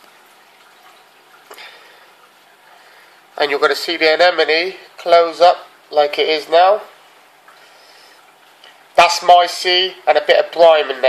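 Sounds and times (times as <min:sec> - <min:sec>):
water running in aquarium: 0:00.0 - 0:11.0.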